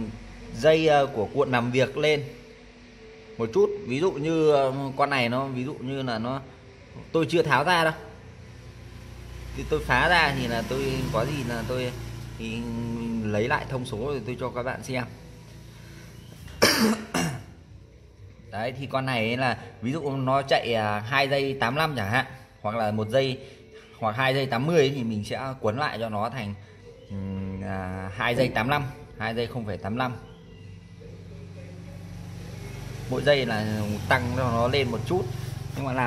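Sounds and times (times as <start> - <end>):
man coughing: 16.6 - 17.6.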